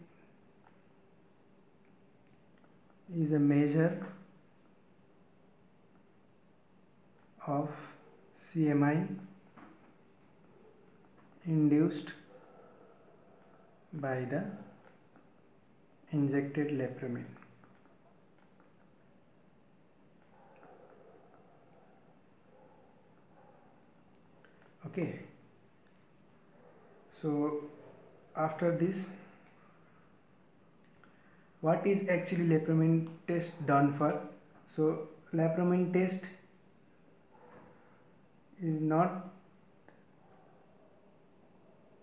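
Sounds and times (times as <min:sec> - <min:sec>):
cricket trilling: 0:00.0 - 0:42.0.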